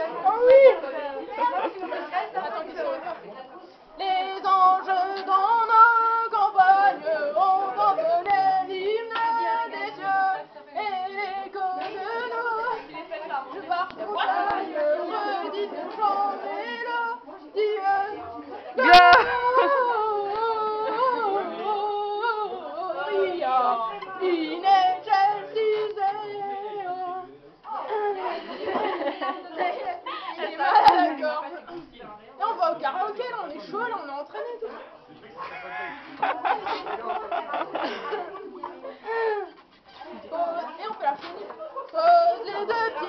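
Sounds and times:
woman singing: 4.0 - 27.2, 40.3 - 43.0.

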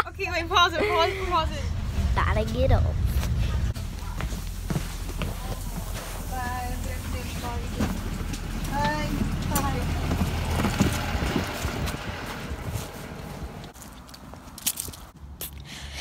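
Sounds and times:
bus engine rumbling: 0.0 - 16.0.

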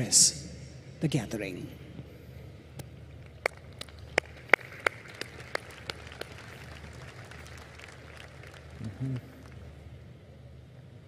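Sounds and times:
faint crowd ambience: 0.0 - 11.0.

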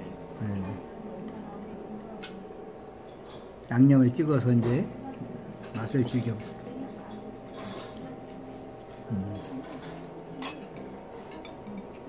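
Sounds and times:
faint murmur of voices: 0.0 - 12.0
tableware clicking: 9.4 - 12.0.

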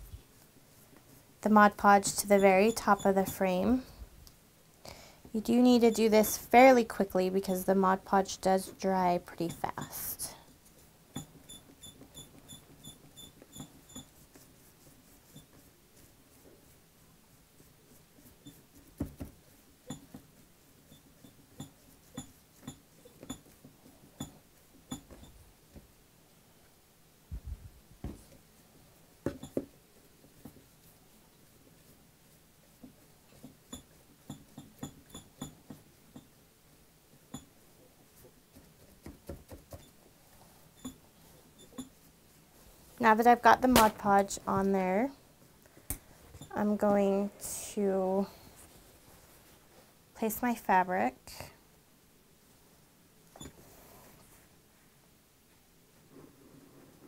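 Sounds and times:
sponge brush dabbing and tapping: 0.0 - 3.8, 5.3 - 26.0, 27.9 - 45.6
sponge brush squeaking on plastic: 0.2 - 3.4, 10.7 - 25.4.

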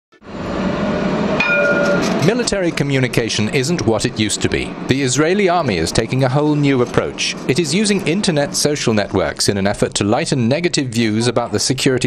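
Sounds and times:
tram running past: 0.2 - 12.0.

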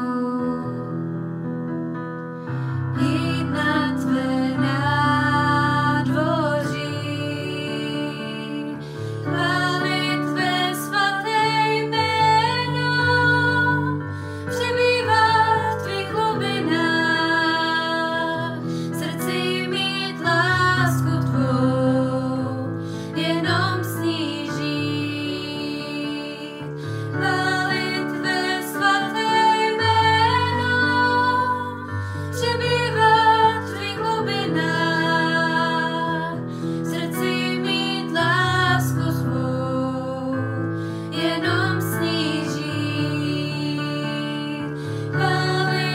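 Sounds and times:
woman singing slow melody: 0.0 - 1.0, 2.9 - 45.9.

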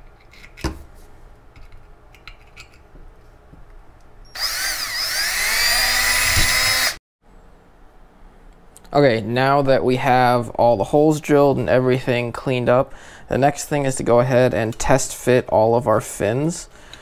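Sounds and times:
cordless drill drilling: 4.3 - 7.0.

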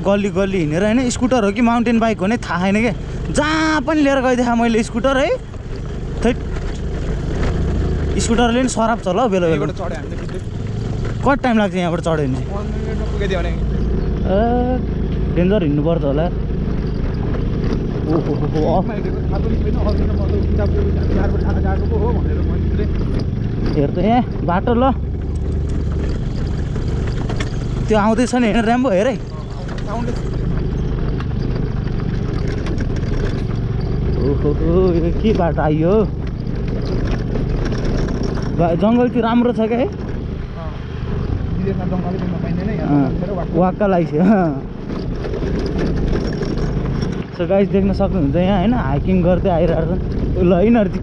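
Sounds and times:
motor scooter rumbling: 0.0 - 51.0
knocks from gravel trail: 16.4 - 41.4.

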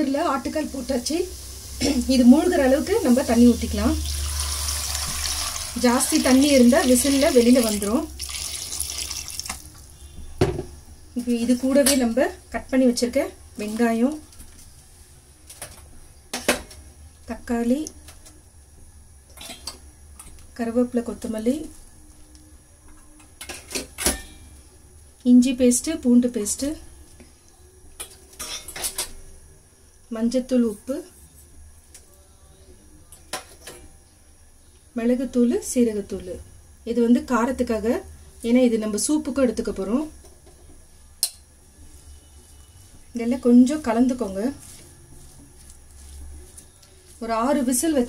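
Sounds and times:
water poured into metal pot: 4.0 - 9.8.

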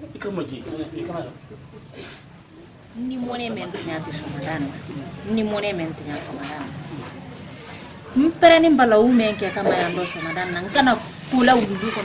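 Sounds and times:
woman talking: 3.0 - 7.3, 8.1 - 12.0.

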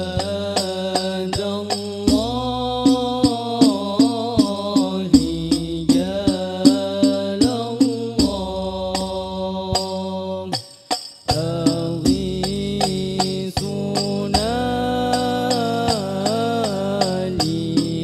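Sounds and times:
frame drums beating: 0.0 - 18.0
men singing: 0.0 - 18.0.

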